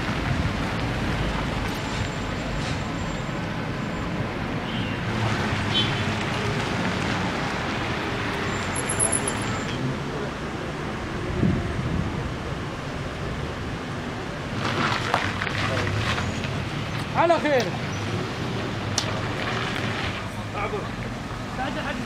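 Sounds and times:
passing and idling cars: 0:00.0 - 0:22.0.

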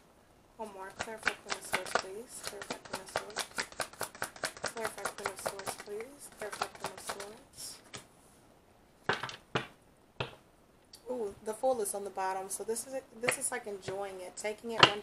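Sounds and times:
cards being shuffled: 0:00.9 - 0:08.1, 0:09.1 - 0:10.4
card slapped on table: 0:09.1 - 0:10.4.

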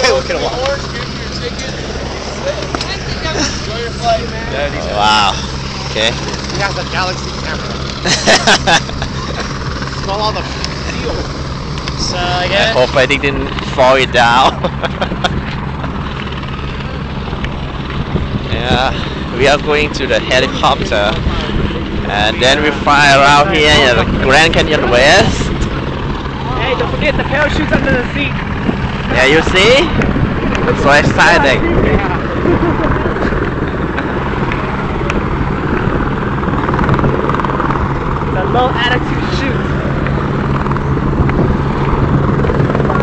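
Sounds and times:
helicopter drone: 0:00.0 - 0:43.0.

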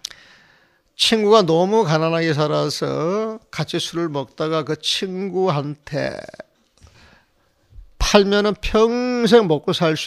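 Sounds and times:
faint breath: 0:00.0 - 0:00.9, 0:06.8 - 0:07.7.

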